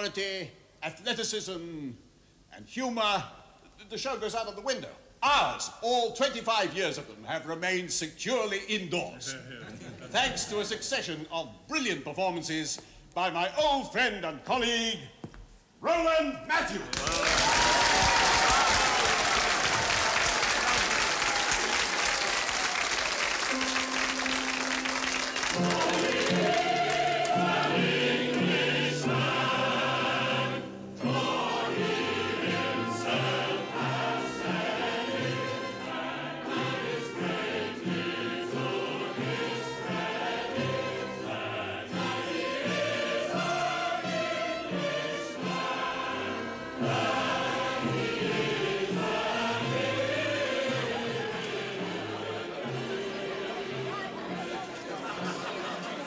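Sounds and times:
crowd applause: 0:16.9 - 0:28.6, 0:53.8 - 0:56.0
chorus singing with accompaniment: 0:23.4 - 0:56.0.

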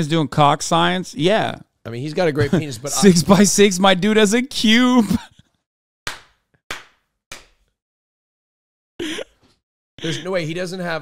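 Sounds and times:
man laughing: 0:02.4 - 0:04.0, 0:04.8 - 0:05.3, 0:10.0 - 0:10.5.

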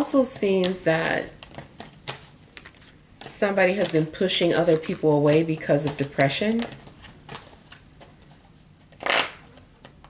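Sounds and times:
cards being shuffled: 0:01.4 - 0:10.0.

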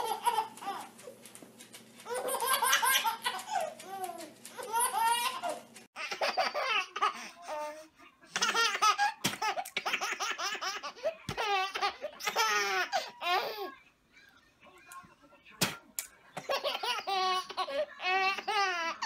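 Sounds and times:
baby laughing: 0:00.0 - 0:01.1, 0:02.0 - 0:13.7, 0:16.4 - 0:19.0.

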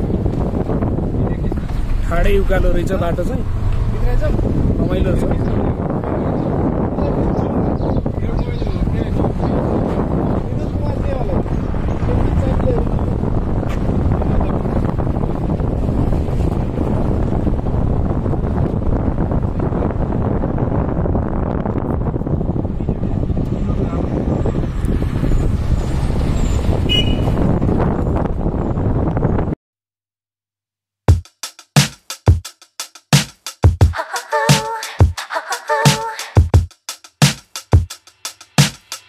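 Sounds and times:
vehicle engine and road noise: 0:00.0 - 0:29.6.

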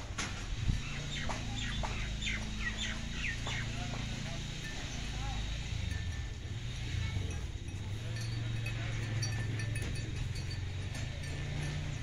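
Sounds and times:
birds chirping: 0:00.3 - 0:12.0.

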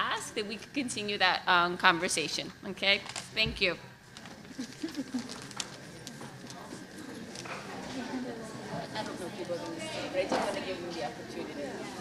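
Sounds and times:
faint chatter: 0:04.1 - 0:12.0.

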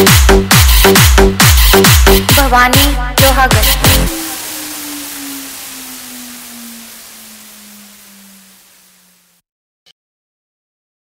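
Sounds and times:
trance beat: 0:00.0 - 0:09.2
hissing noise wash: 0:03.2 - 0:09.4
low tone sliding downward: 0:03.4 - 0:09.4.

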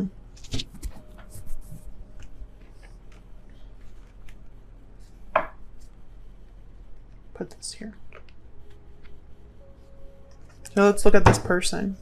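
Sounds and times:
knock on tabletop: 0:05.4 - 0:05.6.

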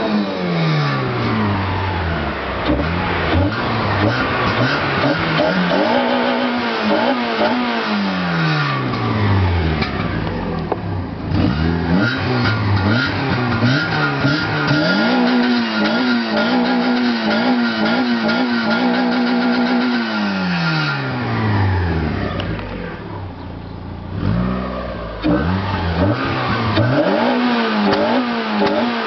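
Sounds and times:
car engine revving: 0:00.0 - 0:29.0.

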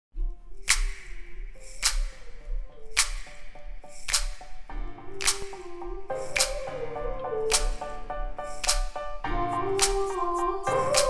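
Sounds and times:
soft synth melody: 0:00.2 - 0:11.0.

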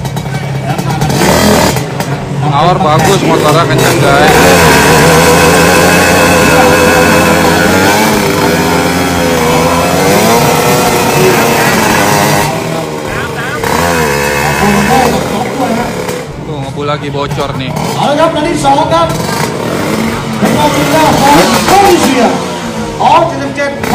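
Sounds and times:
motorcycle engines revving: 0:00.0 - 0:23.9.

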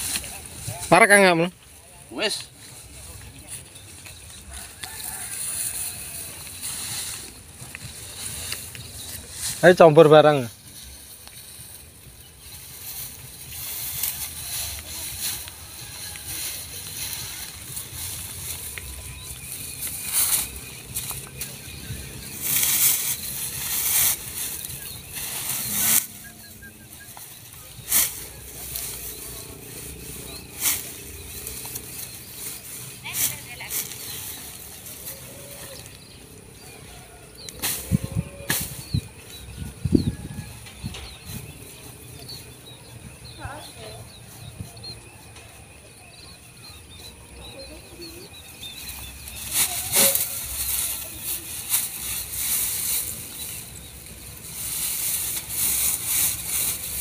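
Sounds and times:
cut grass rustling and crackling: 0:00.0 - 0:57.0.

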